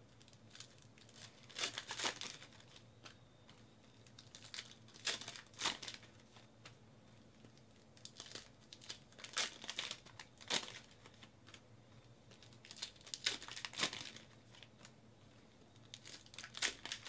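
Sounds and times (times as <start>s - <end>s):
card pack wrapper crinkling and tearing: 0.2s - 3.2s, 4.0s - 6.2s, 7.5s - 11.6s, 12.3s - 14.7s, 15.8s - 17.0s.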